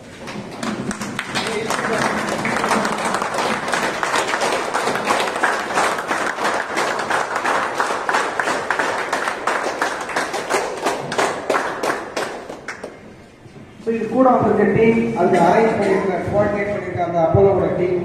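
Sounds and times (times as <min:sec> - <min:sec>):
audience applauding: 0:00.0 - 0:13.0.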